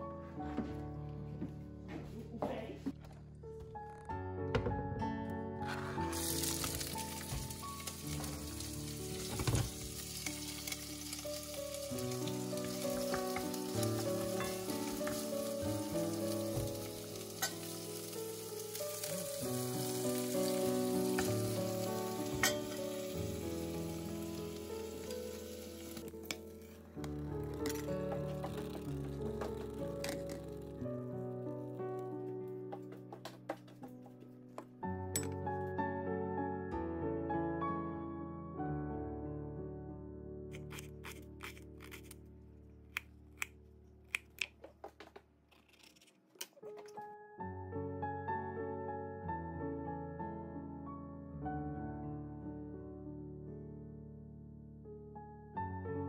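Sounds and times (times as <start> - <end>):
background music: 0.0 - 44.6, 45.6 - 56.0
onions sizzling in a pot: 6.1 - 26.8.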